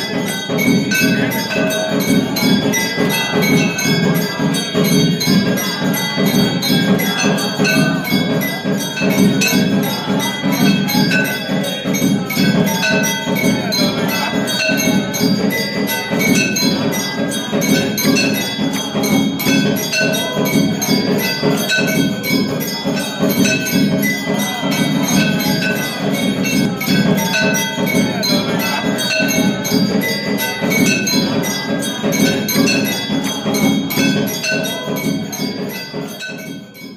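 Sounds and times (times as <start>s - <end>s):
temple bells clanging: 0.0s - 36.9s.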